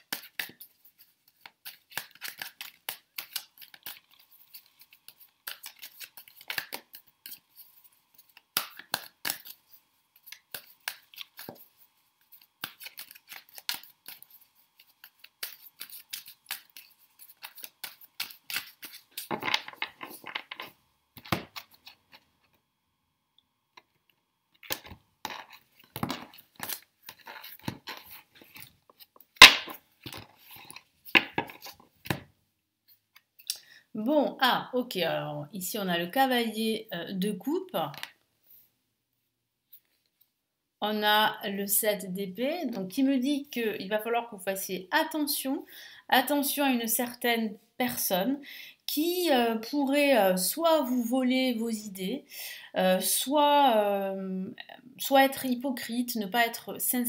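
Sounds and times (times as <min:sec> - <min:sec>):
cards shuffling: 0:00.0 - 0:22.6, 0:24.6 - 0:32.3.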